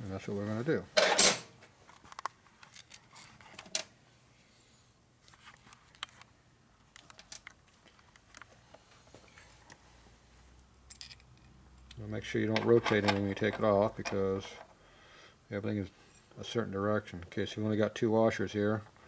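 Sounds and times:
small metal clicks and clinks: 0:10.9 - 0:11.5.

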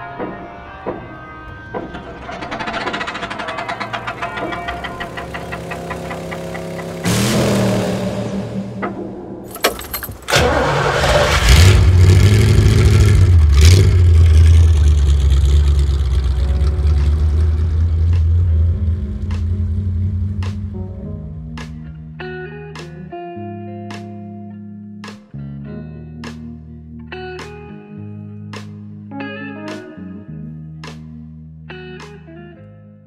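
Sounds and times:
engine starting and revving: 0:01.7 - 0:20.7
music with ticking beat: 0:19.2 - 0:19.8.

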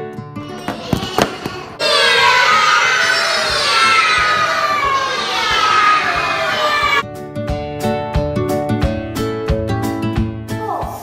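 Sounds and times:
children calling out in unison: 0:00.4 - 0:07.0.

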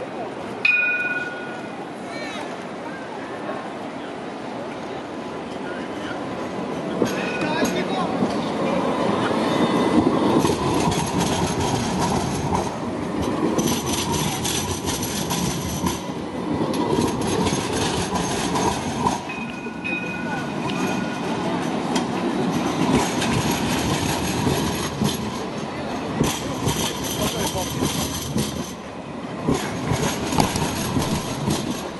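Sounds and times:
tram wheels rumbling on rails: 0:00.0 - 0:31.9.

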